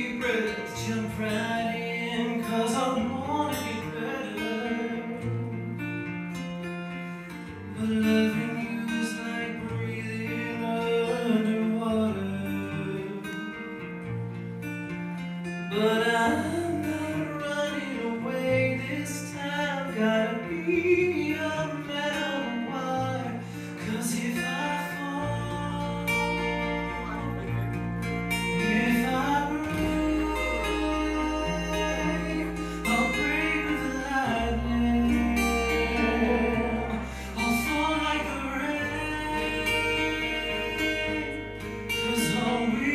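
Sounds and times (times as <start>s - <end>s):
man singing: 0.0s - 5.8s, 7.4s - 13.6s, 15.7s - 42.9s
guitar: 0.0s - 42.9s
deep bass: 15.8s - 42.9s.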